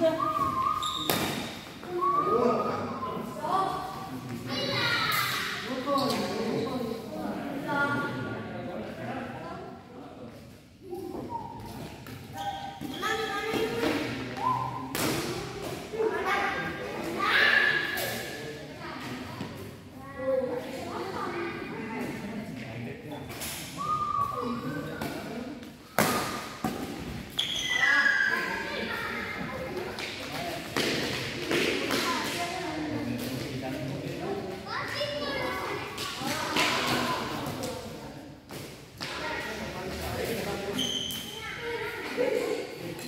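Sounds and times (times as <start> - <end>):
high-pitched shoe squeak: 0.4 - 1.4, 12.3 - 13.3, 27.4 - 28.3, 40.8 - 41.4
children calling and chattering: 1.8 - 6.0, 27.6 - 30.1, 34.6 - 37.4, 41.3 - 43.0.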